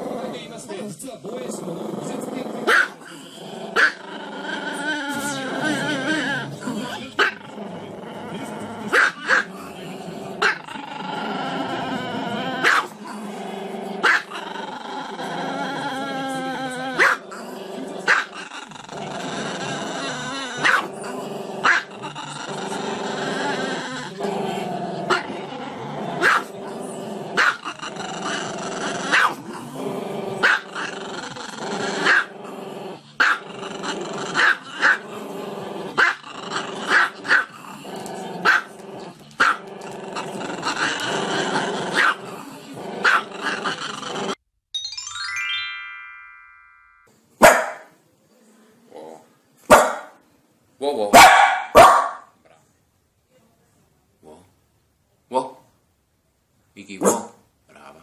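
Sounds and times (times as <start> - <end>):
dog barking: 2.7 - 3.0, 8.9 - 9.5, 12.6 - 12.9, 14.0 - 14.3, 17.0 - 17.2, 20.6 - 20.9, 21.6 - 21.9, 26.2 - 26.5, 29.1 - 29.4, 33.2 - 33.4, 38.4 - 38.7, 42.0 - 42.2, 43.0 - 43.2, 47.4 - 47.9, 49.7 - 50.2, 51.1 - 52.3, 57.0 - 57.4.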